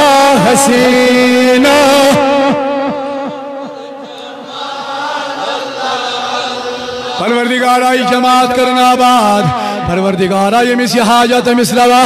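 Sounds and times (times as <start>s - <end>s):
devotional chanting: 0.0s - 12.0s.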